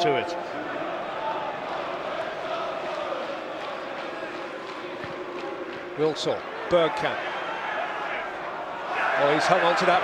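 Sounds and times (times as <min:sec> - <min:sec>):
crowd voices din: 0:00.0 - 0:10.0
fans chanting: 0:00.4 - 0:10.0.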